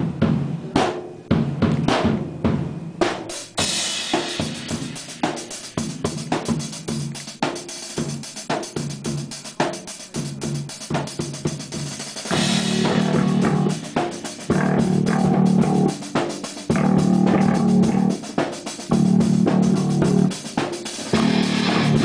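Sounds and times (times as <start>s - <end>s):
kick and snare drum hits: 0.0s - 22.0s
cymbal crash: 3.3s - 6.8s, 12.1s - 18.9s, 20.2s - 22.0s
hard rock band playing: 3.5s - 22.0s.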